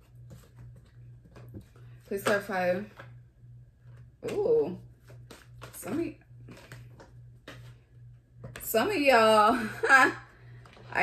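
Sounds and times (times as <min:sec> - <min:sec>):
cards being shuffled: 0:00.0 - 0:03.2, 0:05.0 - 0:08.7.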